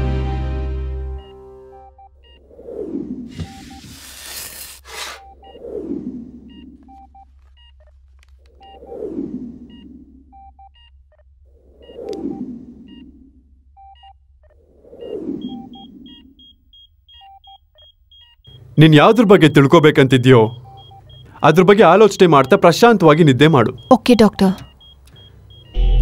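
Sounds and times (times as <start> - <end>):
patient monitor beeps: 3.4 - 4.0, 6.5 - 7.9, 10.4 - 11.2, 13.8 - 26.0
steady low hum: 5.2 - 26.0.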